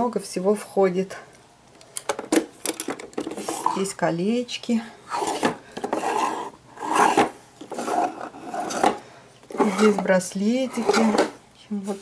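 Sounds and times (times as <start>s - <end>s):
wooden drawers rubbing: 5.1s - 11.4s.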